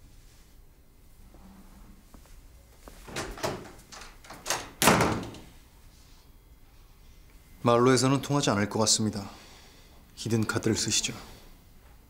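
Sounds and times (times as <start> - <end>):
door shutting with a bang: 3.1 - 5.5.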